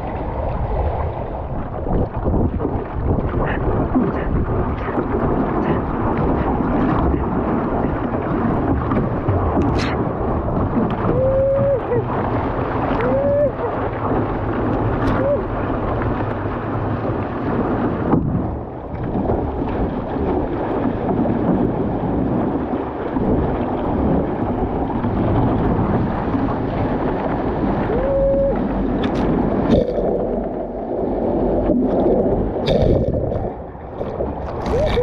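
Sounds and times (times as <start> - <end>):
water rushing along canoe hull: 0.0 - 35.0
wind buffeting microphone: 0.0 - 35.0.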